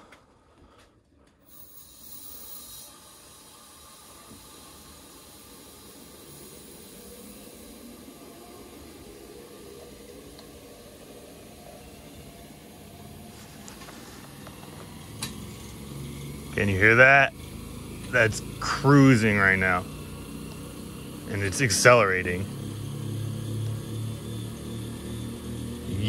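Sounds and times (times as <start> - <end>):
steam hissing through turbine: 1.4 - 26.0.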